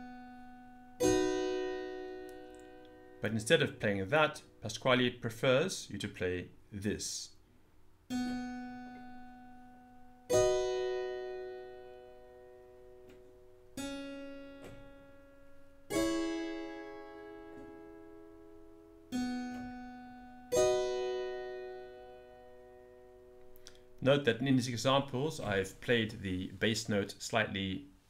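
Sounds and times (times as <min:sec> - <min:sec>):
keyboard notes and chords: 0:00.0 - 0:04.7, 0:08.1 - 0:24.0.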